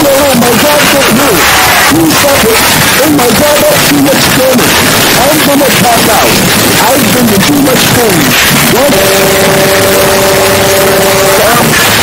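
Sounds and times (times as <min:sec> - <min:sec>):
harsh loud noise: 0:00.0 - 0:12.0.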